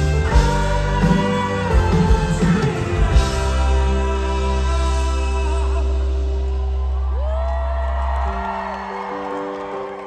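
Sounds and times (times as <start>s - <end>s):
live concert music with heavy bass: 0.0s - 10.0s
crowd whooping: 6.2s - 10.0s.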